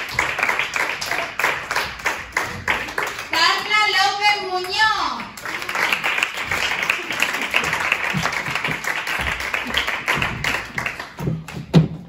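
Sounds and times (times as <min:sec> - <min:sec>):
audience applause: 0:00.0 - 0:03.4, 0:05.2 - 0:11.7.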